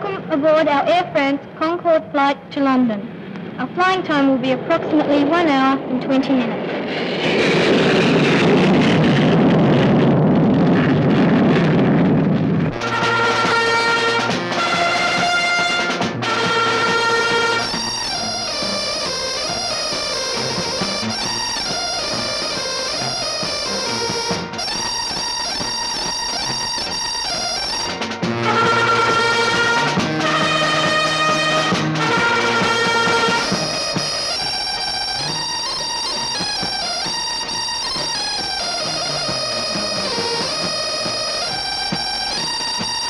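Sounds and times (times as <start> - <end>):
jet engine roar: 0.0 - 43.0
brass-led music: 12.5 - 43.0.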